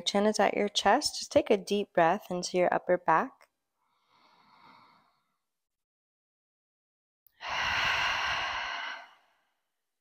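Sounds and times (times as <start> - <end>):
woman breathing deeply: 3.8 - 5.4, 7.4 - 9.6.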